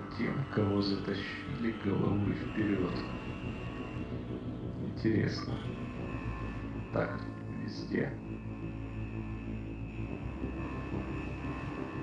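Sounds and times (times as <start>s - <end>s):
low rumbling drone: 0.0s - 12.0s
steady high tone: 0.0s - 12.0s.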